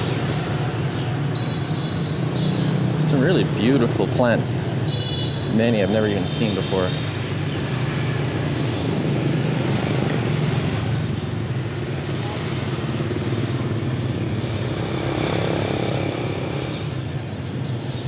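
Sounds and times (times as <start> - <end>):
scooter and motorcycle engines passing: 0.0 - 18.0.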